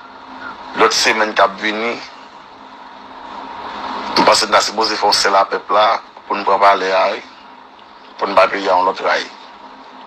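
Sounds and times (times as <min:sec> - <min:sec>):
faint low hum: 0:00.0 - 0:10.0
steady background hiss: 0:00.0 - 0:10.0.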